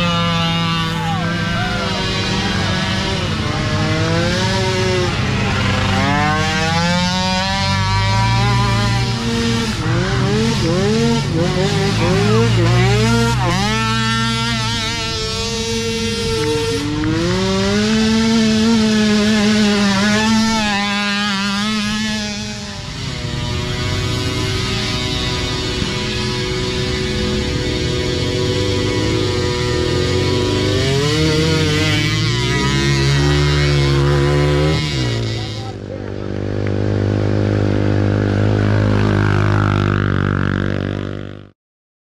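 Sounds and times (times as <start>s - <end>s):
racing quad engines revving: 0.0s - 41.6s.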